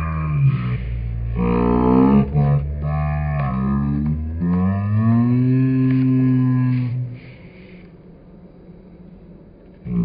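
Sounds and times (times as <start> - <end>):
person humming low note: 0.0 - 7.6.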